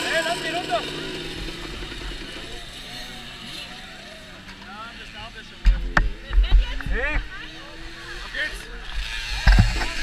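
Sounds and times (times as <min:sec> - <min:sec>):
people talking: 0:00.0 - 0:01.0.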